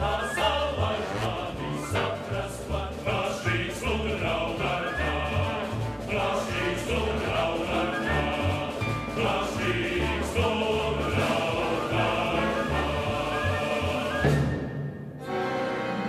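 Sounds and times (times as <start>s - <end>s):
choir singing: 0.0s - 14.6s
orchestra playing: 0.0s - 16.0s
piano: 0.0s - 16.0s.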